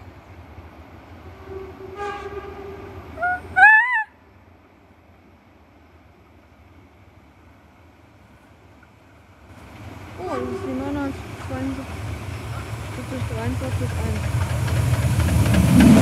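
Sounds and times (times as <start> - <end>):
distant steam locomotive whistle: 1.2 - 3.9.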